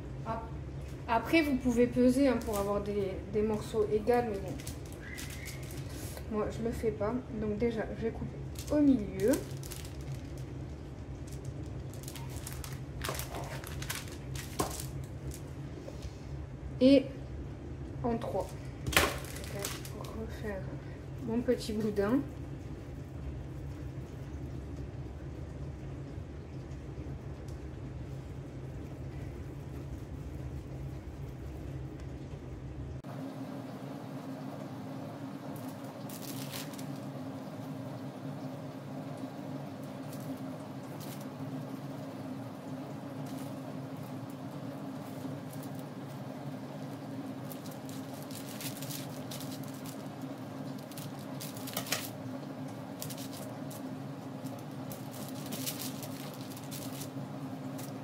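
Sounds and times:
low background hum: 0:00.0 - 0:58.0
hands working bread dough: 0:00.9 - 0:16.3.

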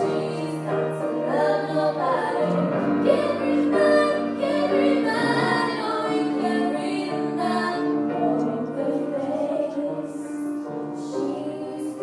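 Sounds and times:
grand piano accompaniment: 0:00.0 - 0:12.0
woman singing: 0:11.0 - 0:12.0.

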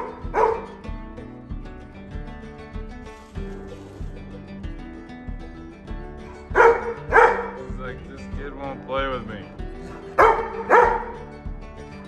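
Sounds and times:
dog barking: 0:00.0 - 0:00.8, 0:06.5 - 0:07.6, 0:09.9 - 0:11.2
acoustic guitar music with beat: 0:00.0 - 0:12.0.

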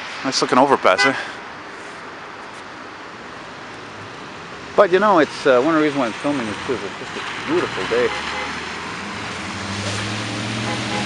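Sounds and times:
traffic hiss: 0:00.0 - 0:11.0
tyres on wet slushy pavement: 0:00.0 - 0:11.0.

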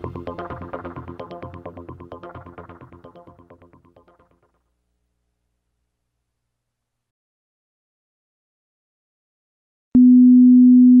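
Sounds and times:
low pure test tone: 0:10.0 - 0:11.0.

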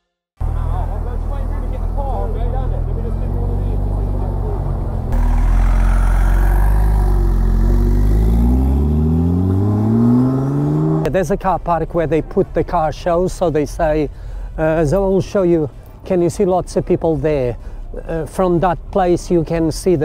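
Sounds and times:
car engine running and revving: 0:02.5 - 0:11.1.

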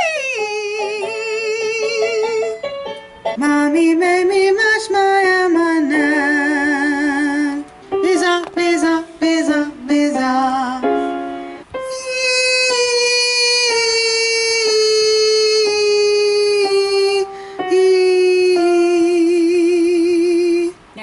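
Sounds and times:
woman singing vocal exercises: 0:00.0 - 0:02.6, 0:03.4 - 0:11.0, 0:11.8 - 0:21.0.

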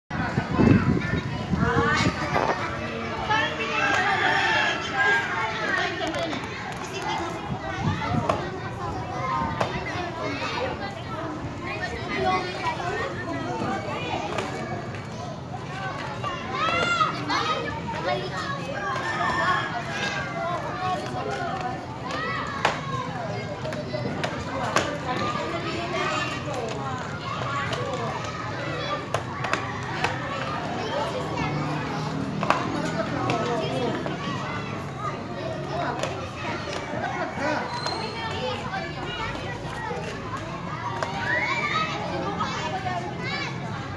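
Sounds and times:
children talking and calling out: 0:00.1 - 0:43.9.

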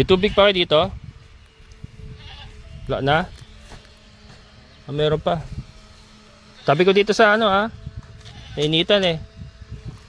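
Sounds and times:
goat bleating: 0:00.0 - 0:00.7, 0:02.0 - 0:03.8, 0:06.5 - 0:07.2, 0:08.2 - 0:08.8.

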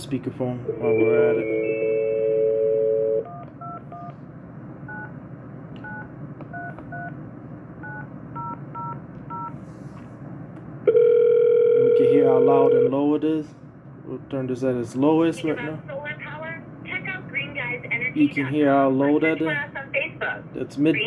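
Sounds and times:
phone ringback tone: 0:00.8 - 0:04.1, 0:10.9 - 0:12.9
phone dial tone: 0:01.0 - 0:04.1, 0:10.9 - 0:12.9.

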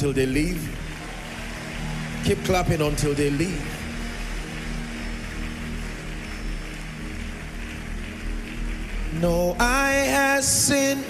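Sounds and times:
large crowd clapping: 0:00.0 - 0:11.0
soft music with low chords: 0:00.0 - 0:11.0.

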